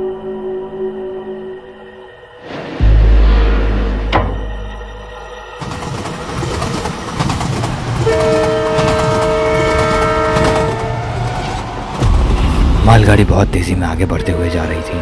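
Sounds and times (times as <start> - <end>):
train rumbling: 2.5 - 15.0
train horn chord: 8.0 - 11.1.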